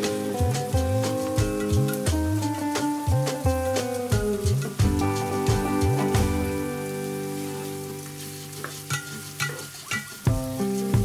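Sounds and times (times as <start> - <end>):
background music: 0.0 - 11.0
onions sizzling in oil: 0.0 - 11.0
wooden spatula stirring: 8.0 - 10.3.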